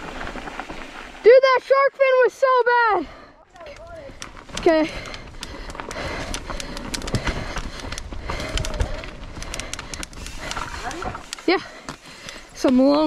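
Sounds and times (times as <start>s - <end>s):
tyres rumbling on dirt: 0.0s - 1.8s, 3.8s - 13.0s
wind: 0.0s - 13.0s
bike clicks and rattles: 3.5s - 13.0s.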